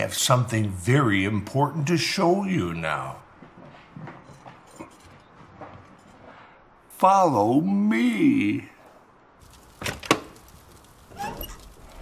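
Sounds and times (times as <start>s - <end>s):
faint rustling: 8.8s - 12.0s.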